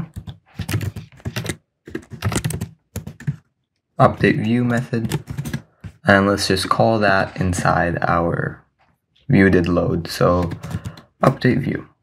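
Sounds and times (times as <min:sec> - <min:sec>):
computer keyboard typing: 0:00.0 - 0:03.5, 0:04.4 - 0:06.0, 0:10.4 - 0:11.1.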